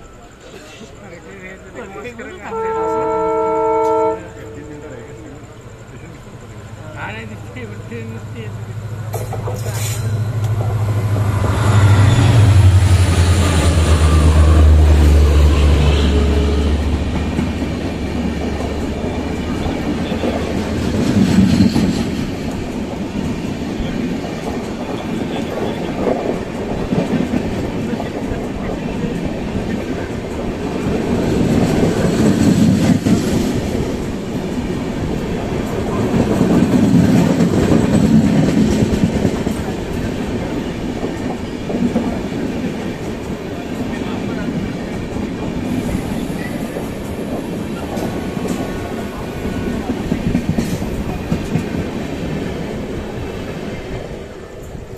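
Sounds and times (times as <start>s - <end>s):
train wheels clattering over rails: 4.6s - 54.9s.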